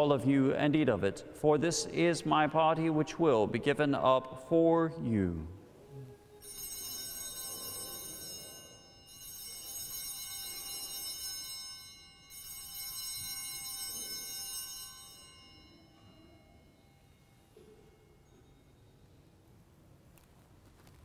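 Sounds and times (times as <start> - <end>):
small bells pealing: 6.4 - 19.4.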